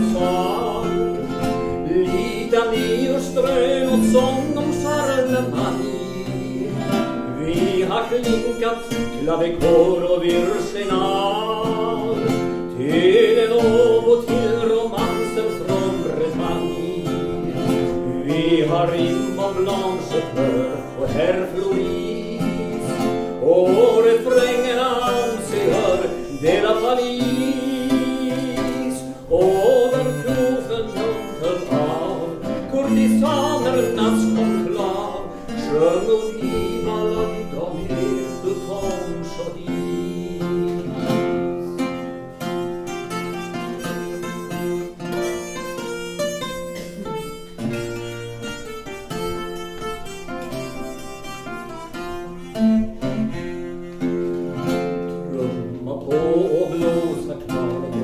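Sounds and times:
acoustic guitar: 0.0s - 58.0s.

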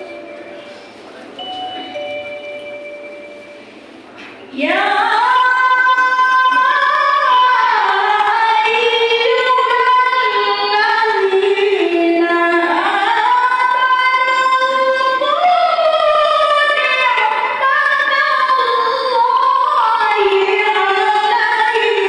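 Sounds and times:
woman chanting into a microphone: 4.5s - 22.0s.

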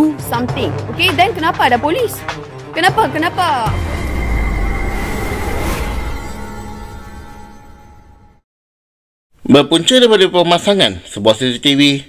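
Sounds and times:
deep rumble: 3.6s - 7.1s.

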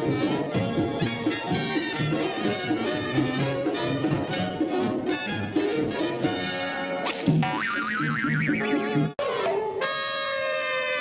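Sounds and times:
orchestral cartoon music: 0.0s - 10.9s
springy boing sound effect: 7.3s - 8.9s.

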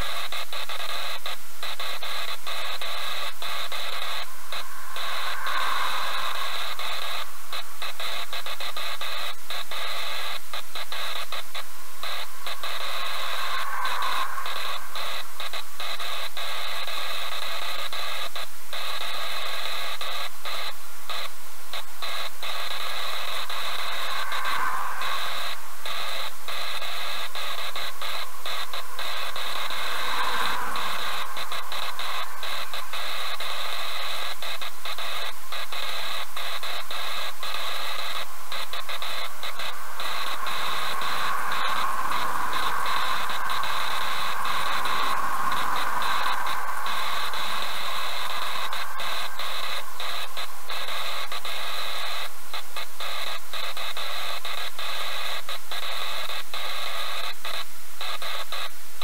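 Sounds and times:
traffic passing: 3.4s - 8.0s.

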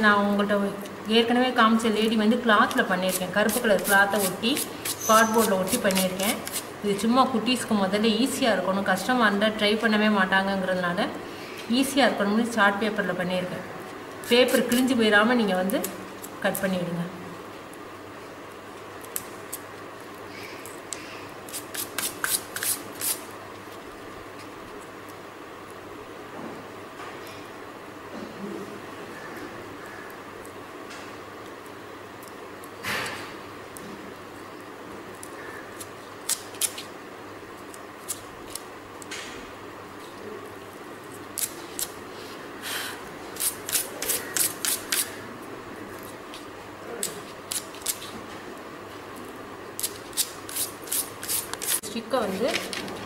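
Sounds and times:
scissors snipping: 35.2s - 36.9s, 47.0s - 48.1s.

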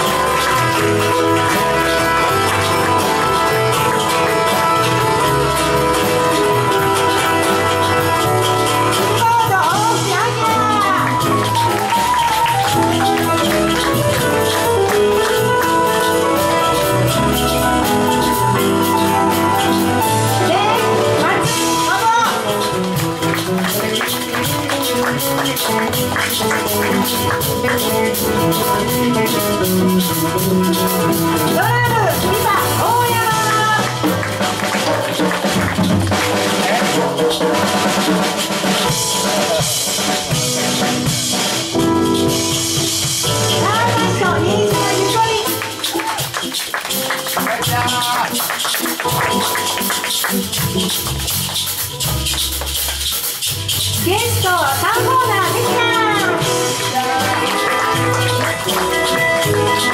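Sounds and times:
drum kit: 0.0s - 59.9s
small jazz band playing: 0.0s - 59.9s.

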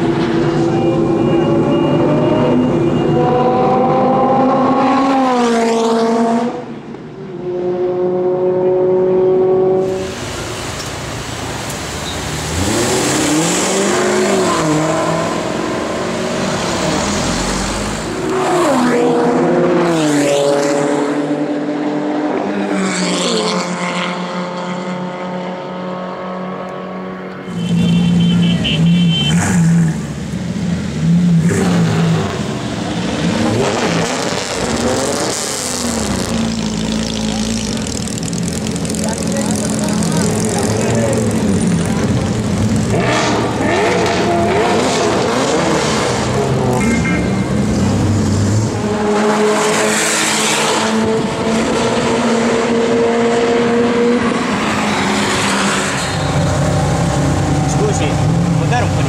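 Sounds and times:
car engines revving and accelerating: 0.0s - 59.0s.

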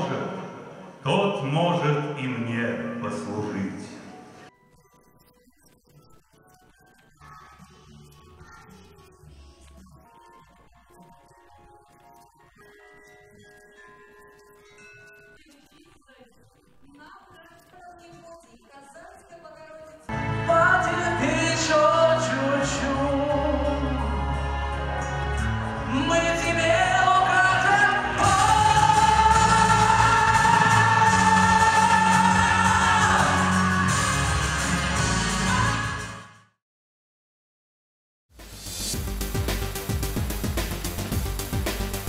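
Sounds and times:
chime-like notes ringing: 12.6s - 15.6s.

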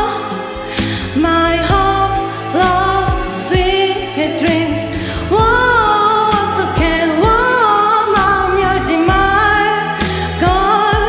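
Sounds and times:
person singing into microphone: 0.0s - 11.0s
pop ballad backing track: 0.0s - 11.0s.

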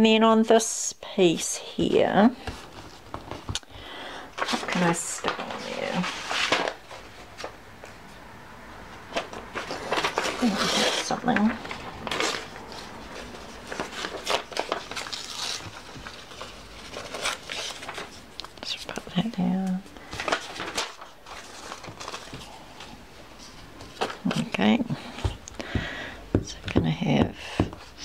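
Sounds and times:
paper scraps rustling: 4.3s - 7.6s, 9.1s - 24.6s.

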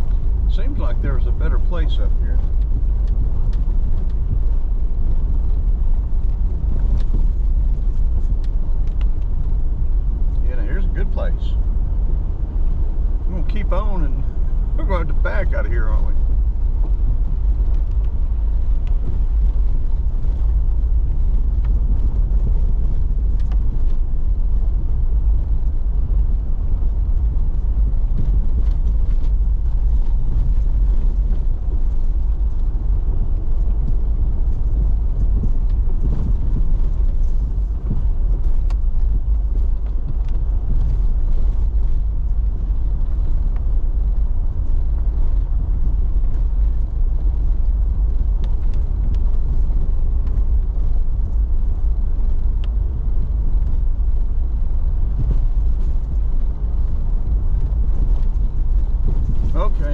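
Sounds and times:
engine and tyres rumbling: 0.0s - 59.9s.

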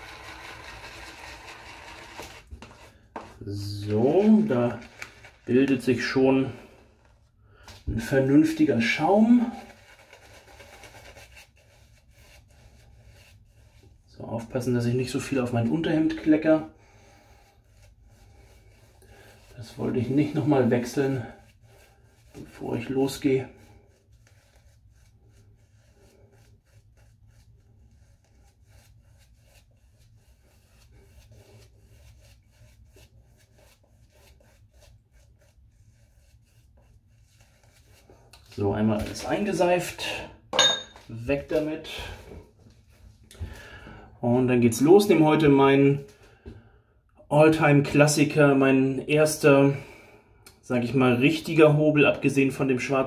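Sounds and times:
shaving brush scratching on skin: 0.0s - 7.2s, 8.1s - 39.9s.

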